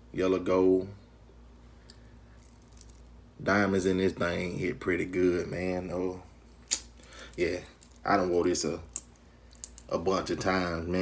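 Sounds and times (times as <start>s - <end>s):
low steady hum: 0.0s - 11.0s
metal bracelet links clicking: 8.9s - 9.9s.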